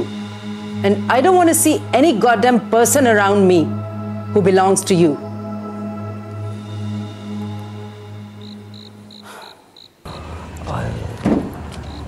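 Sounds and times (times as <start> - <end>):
background music drone: 0.0 - 12.0
crickets chirping: 5.2 - 10.3, 11.7 - 12.0.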